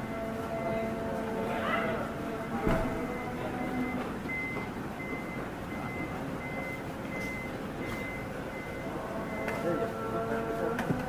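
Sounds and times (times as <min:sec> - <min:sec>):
vehicle warning beeps: 0:00.0 - 0:10.6
steady background rumble: 0:00.0 - 0:11.0.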